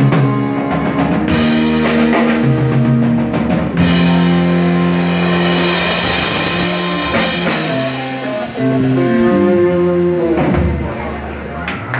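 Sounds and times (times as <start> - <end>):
electric guitar and bass: 0.0 - 11.9
drum cymbals: 3.7 - 10.1.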